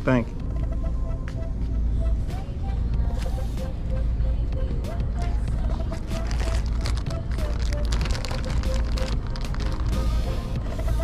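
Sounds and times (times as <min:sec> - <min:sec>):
steady low rumble: 0:00.0 - 0:11.0
plastic bag crinkling: 0:06.0 - 0:10.1.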